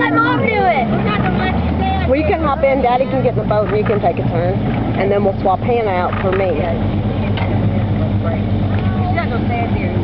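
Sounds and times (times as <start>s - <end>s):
outboard motor running: 0.0s - 10.0s.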